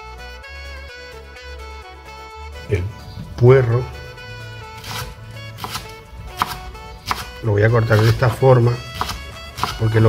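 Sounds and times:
background music: 0:00.0 - 0:10.0
knife cutting on wooden board: 0:04.8 - 0:10.0.

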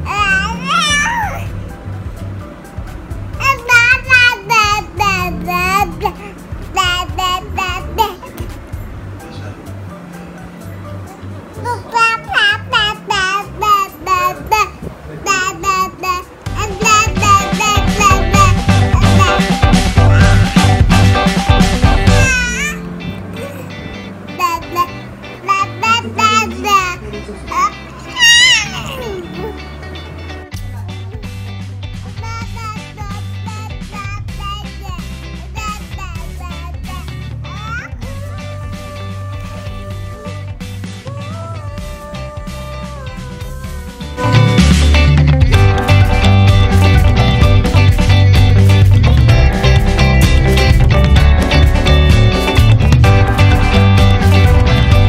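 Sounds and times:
baby babbling: 0:00.0 - 0:01.6, 0:03.4 - 0:08.5, 0:11.5 - 0:20.5, 0:22.0 - 0:29.8, 0:32.1 - 0:40.5
background music: 0:00.0 - 0:55.0.

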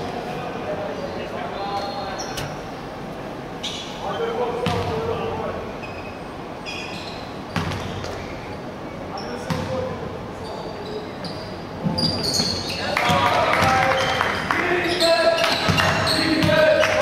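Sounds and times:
players' voices in a hall: 0:00.0 - 0:17.0
sneakers squeaking: 0:01.0 - 0:03.0, 0:03.6 - 0:17.0.

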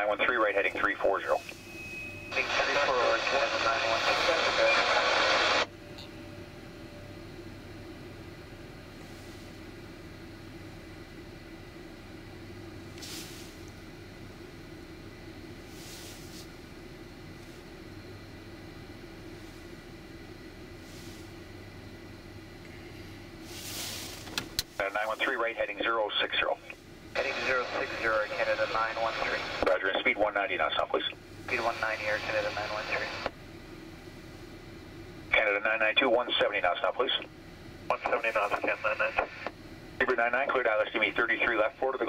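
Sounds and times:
radio static burst: 0:00.0 - 0:01.5, 0:02.3 - 0:05.7, 0:24.8 - 0:33.4, 0:37.9 - 0:42.0
radio hiss: 0:00.0 - 0:01.7, 0:02.3 - 0:05.7, 0:12.9 - 0:13.7, 0:20.6 - 0:21.7, 0:22.6 - 0:33.4, 0:35.3 - 0:42.0
faint hum: 0:00.0 - 0:42.0.

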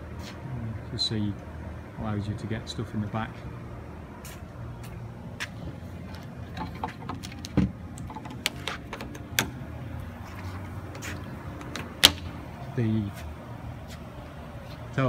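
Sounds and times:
steady low hum: 0:00.0 - 0:15.0
light clicks and knocks: 0:06.1 - 0:09.6
latch snapping: 0:06.6 - 0:09.6, 0:11.6 - 0:12.4
tailgate thump: 0:07.4 - 0:09.6.

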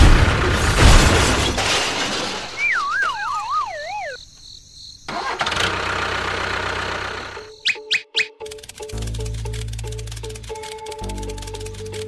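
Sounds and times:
toy vehicle engine sound: 0:05.1 - 0:12.0.

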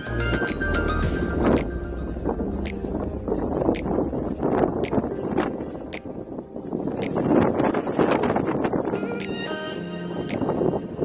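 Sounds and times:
wind buffeting microphone: 0:00.0 - 0:11.0
sharp ticks: 0:02.6 - 0:02.8, 0:04.8 - 0:05.0, 0:05.9 - 0:06.1.

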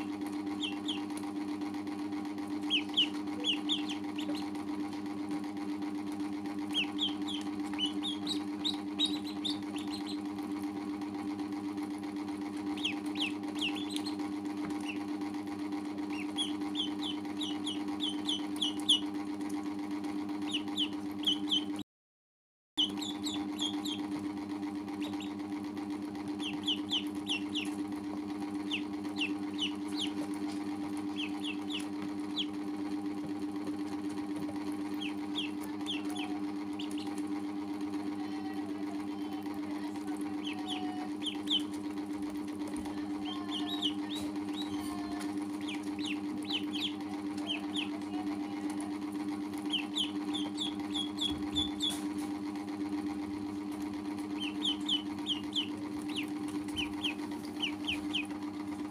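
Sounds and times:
ducklings peeping: 0:00.0 - 0:01.4, 0:02.5 - 0:04.7, 0:06.6 - 0:10.4, 0:12.7 - 0:15.2, 0:16.0 - 0:19.2, 0:20.4 - 0:21.8, 0:22.8 - 0:24.2, 0:25.0 - 0:25.4, 0:26.4 - 0:32.6, 0:34.9 - 0:37.4, 0:40.3 - 0:41.8, 0:43.2 - 0:48.1, 0:49.6 - 0:52.2, 0:54.2 - 0:58.4
low machine hum: 0:00.0 - 0:21.8, 0:22.8 - 0:58.9.

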